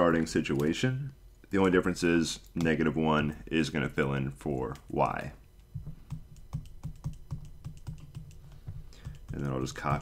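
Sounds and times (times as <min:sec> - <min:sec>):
stylus tapping on tablet screen: 0:05.7 - 0:10.0.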